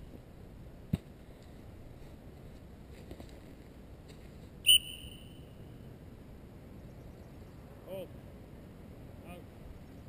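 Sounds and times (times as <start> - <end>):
dog-training whistle blast: 4.7 - 5.4.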